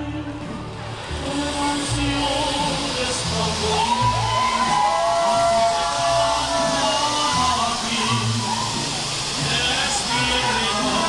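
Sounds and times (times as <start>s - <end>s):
mariachi music: 0.0s - 11.0s
people's voices: 0.0s - 11.0s.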